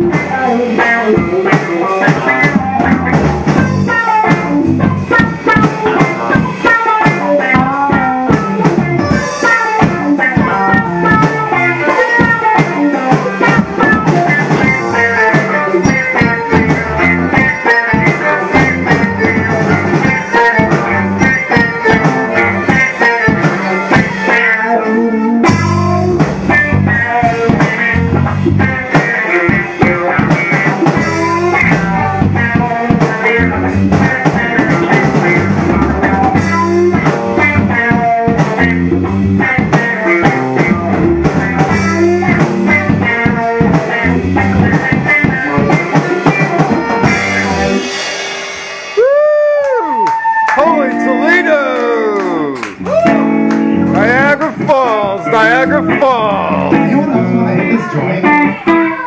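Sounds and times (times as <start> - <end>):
music with drums and guitar: 0.0 - 59.0.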